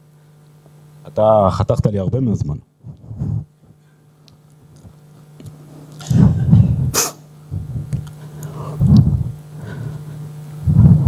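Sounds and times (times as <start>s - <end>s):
sharp hiss: 6.9s - 7.3s
breath into microphone: 8.2s - 10.3s.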